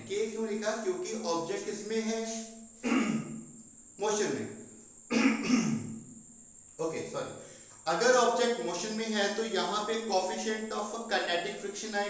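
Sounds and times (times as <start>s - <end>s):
man clearing his throat: 2.8s - 3.4s, 5.1s - 5.9s.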